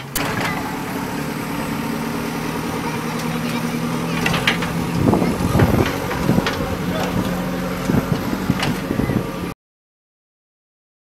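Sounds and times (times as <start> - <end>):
diesel engine running: 0.0 - 9.6.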